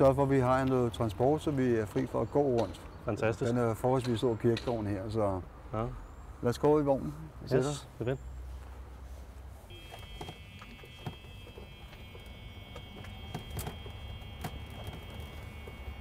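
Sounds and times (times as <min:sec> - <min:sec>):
electric golf cart whine: 0:09.7 - 0:16.0.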